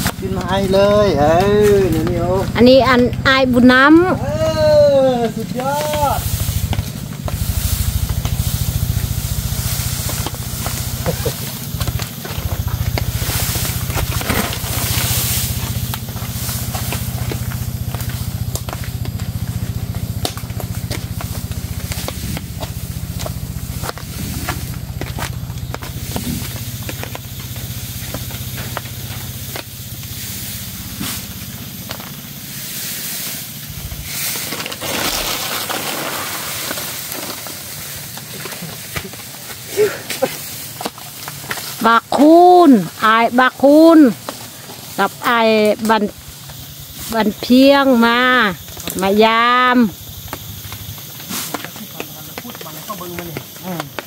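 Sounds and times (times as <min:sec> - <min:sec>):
steady low rumble: 0:00.0 - 0:35.8
dry grass thatch rustling: 0:00.0 - 0:54.0
twigs crunching underfoot: 0:05.0 - 0:43.4, 0:44.0 - 0:54.0.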